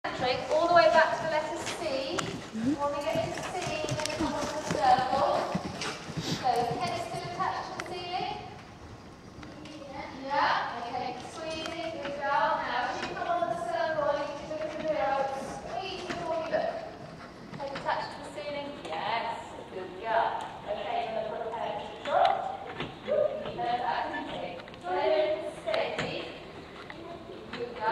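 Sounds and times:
horse hoofbeats on soft footing: 0:00.1 - 0:19.4
person speaking: 0:02.5 - 0:02.9.

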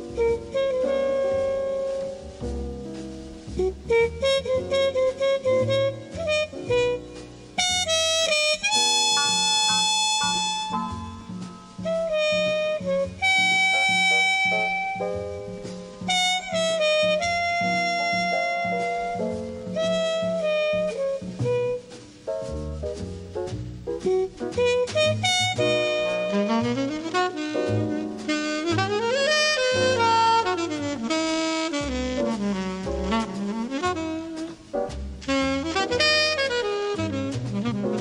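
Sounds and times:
horn playing melody: 0:00.0 - 0:02.2, 0:03.6 - 0:22.2, 0:24.0 - 0:38.0
bass line: 0:00.0 - 0:38.0.

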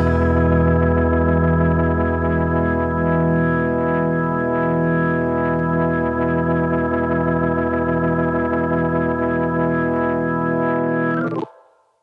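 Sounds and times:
distorted electric guitar chord: 0:00.0 - 0:11.6
organ: 0:00.0 - 0:11.6.

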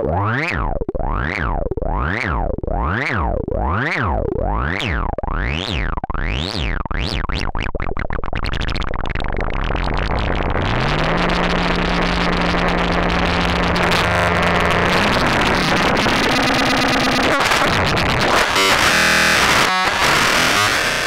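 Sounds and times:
noisy chaotic synthesizer: 0:00.0 - 0:21.0.

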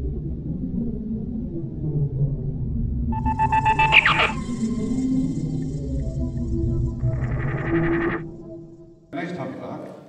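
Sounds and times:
dark ambient music with low drone: 0:00.0 - 0:09.1
falling electronic sweep: 0:03.1 - 0:08.4
fast pulsing electronic beep: 0:03.2 - 0:05.6, 0:07.0 - 0:08.2.

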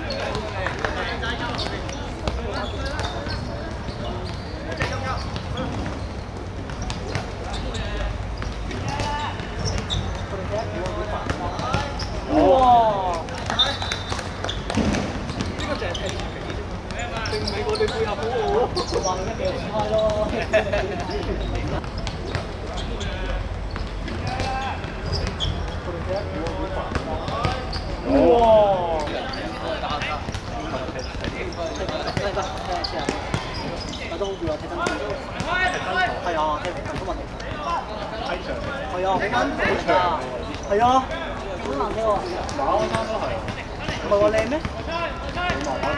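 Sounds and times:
players shouting: 0:07.5 - 0:14.1, 0:24.1 - 0:36.8
football kicks and bounces: 0:08.4 - 0:12.1, 0:13.1 - 0:19.1, 0:23.3 - 0:28.0, 0:41.6 - 0:45.9.

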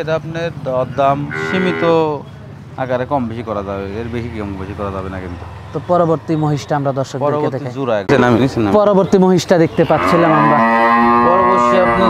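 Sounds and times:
cow mooing: 0:01.2 - 0:02.1, 0:09.9 - 0:12.0.

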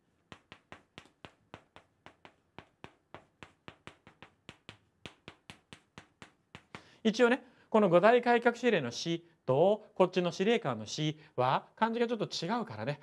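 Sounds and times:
chalk tapping on blackboard: 0:00.0 - 0:06.9.

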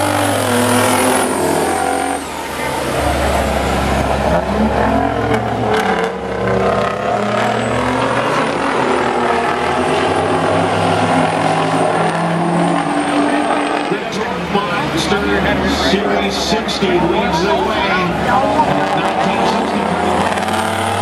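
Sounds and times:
racing truck diesel engines: 0:00.0 - 0:21.0.

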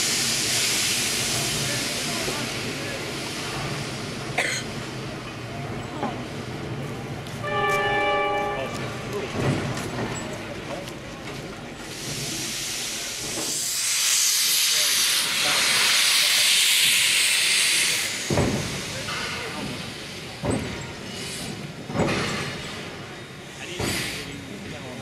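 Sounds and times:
steam locomotive venting steam: 0:00.0 - 0:06.8, 0:09.3 - 0:25.0.

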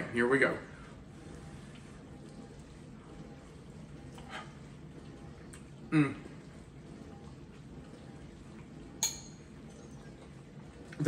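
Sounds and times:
metal fork clinking ceramic bowl: 0:09.0 - 0:09.4.

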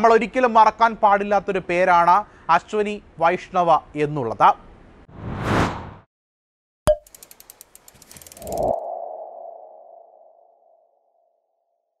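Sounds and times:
quick ticks: 0:06.9 - 0:08.8.

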